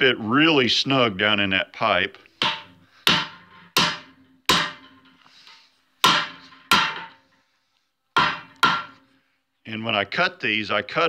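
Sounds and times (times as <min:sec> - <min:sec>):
hammer striking vise anvil: 0:02.4 - 0:05.2, 0:06.0 - 0:07.3, 0:08.2 - 0:09.0.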